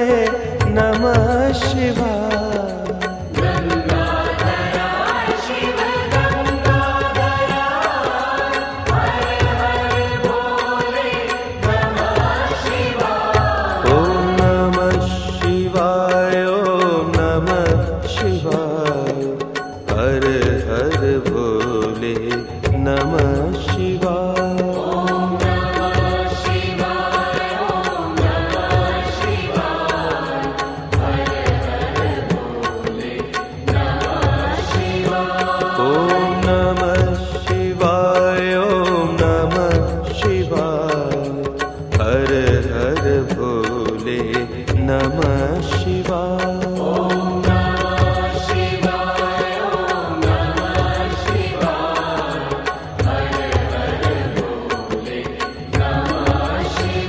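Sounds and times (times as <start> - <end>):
mantra-like chant: 0.0 - 57.0.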